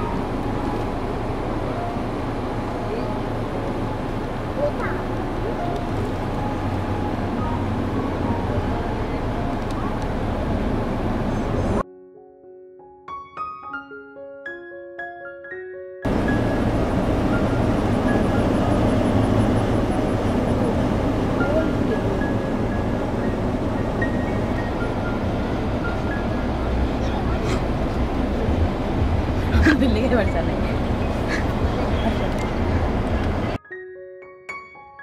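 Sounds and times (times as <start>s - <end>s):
car road and wind noise: 0.0s - 11.8s, 16.0s - 33.6s.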